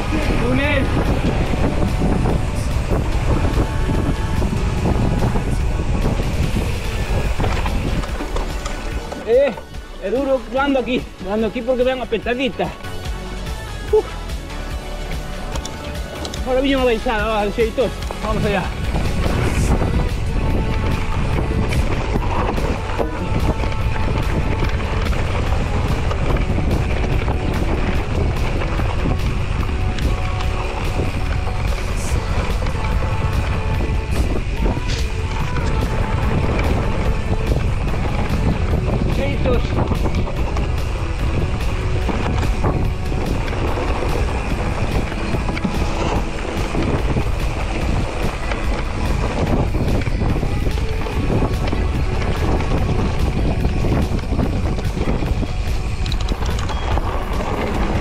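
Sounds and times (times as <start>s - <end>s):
bike rolling over dirt track: 0.0s - 14.1s, 15.1s - 58.0s
wind on microphone: 0.0s - 58.0s.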